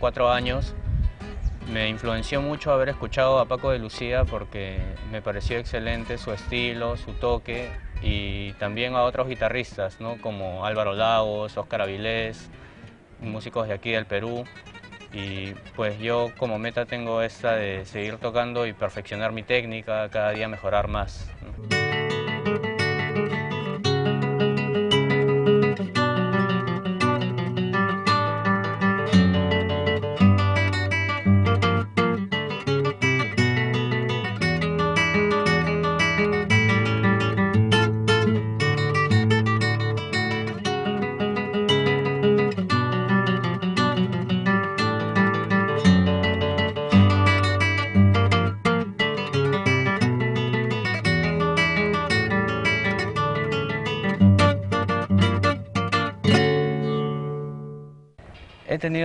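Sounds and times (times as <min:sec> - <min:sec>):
flamenco guitar playing: 0:00.0 - 0:13.2, 0:14.2 - 0:58.6.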